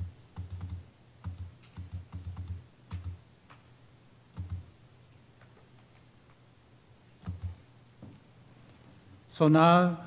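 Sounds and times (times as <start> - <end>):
laptop keys tapping: 0.0 - 3.2, 4.3 - 4.7, 7.2 - 7.6.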